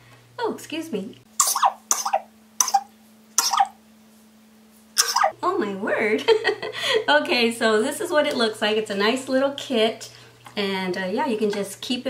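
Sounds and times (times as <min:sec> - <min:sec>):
woman coughing: 0:01.4 - 0:03.7, 0:05.0 - 0:05.3.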